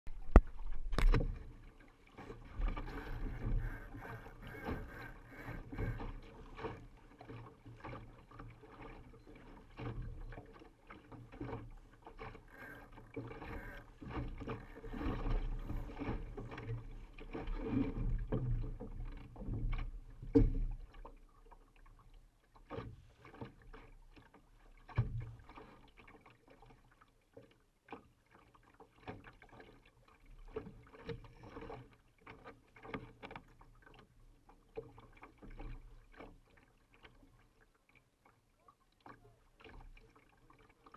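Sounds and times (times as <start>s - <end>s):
boat knocks and clicks: 0.1s - 1.6s, 2.2s - 21.2s
water rushing along hull: 0.1s - 40.9s.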